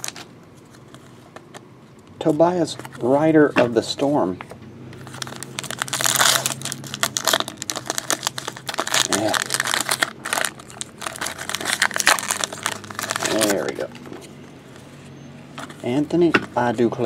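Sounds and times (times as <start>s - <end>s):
wrapper crinkling and tearing: 0.0s - 1.1s, 5.0s - 14.0s.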